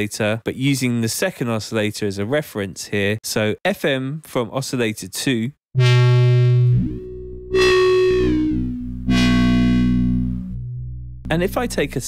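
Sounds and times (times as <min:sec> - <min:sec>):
distorted synth bass notes: 0:05.8 - 0:12.0
low bass tone: 0:05.8 - 0:12.0.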